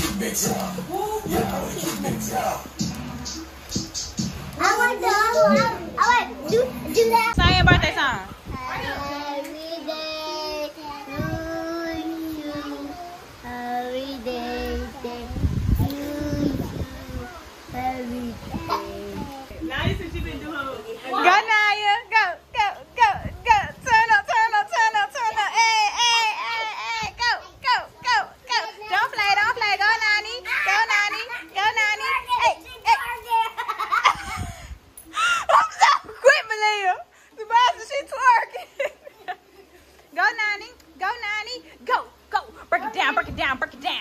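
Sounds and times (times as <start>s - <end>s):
young children calling and babbling: 4.5s - 7.8s, 8.4s - 19.6s, 22.4s - 36.3s
young child singing: 8.5s - 19.5s.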